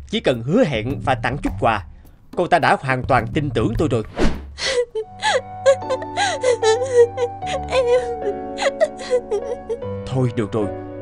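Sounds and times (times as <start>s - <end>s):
soft slow background music: 0.0s - 11.0s
woman sobbing and gasping: 4.6s - 9.9s.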